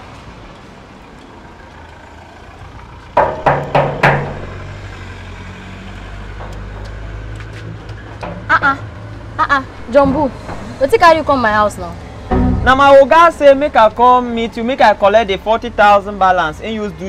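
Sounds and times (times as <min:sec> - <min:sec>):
low engine hum: 0:00.0 - 0:14.7
bangs on sheet-metal gate: 0:03.2 - 0:04.8, 0:12.3 - 0:13.6.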